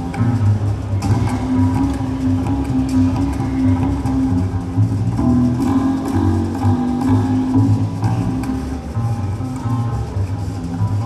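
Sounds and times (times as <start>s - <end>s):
double bass notes: 0.0s - 11.0s.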